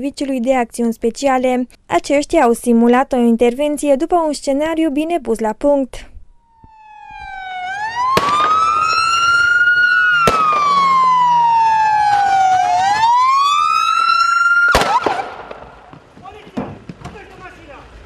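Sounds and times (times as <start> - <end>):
police siren wailing: 6.4 - 15.3.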